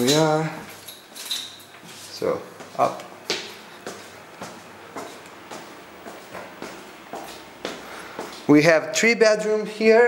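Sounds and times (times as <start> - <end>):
footsteps on carpeted stairs: 2.6 - 8.5.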